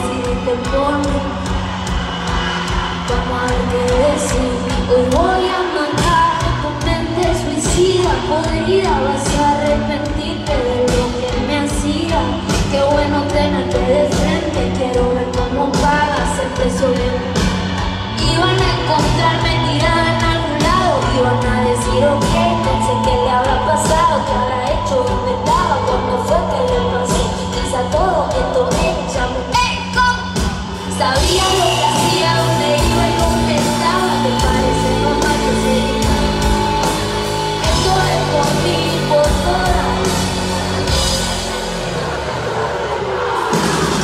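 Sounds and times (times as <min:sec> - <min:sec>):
woman singing into a microphone: 0:00.0 - 0:01.4, 0:03.1 - 0:17.4, 0:18.2 - 0:41.0
live band music: 0:00.0 - 0:44.0.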